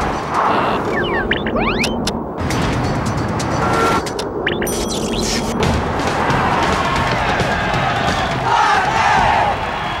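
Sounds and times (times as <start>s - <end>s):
crowd cheering and shouting: 6.1s - 10.0s.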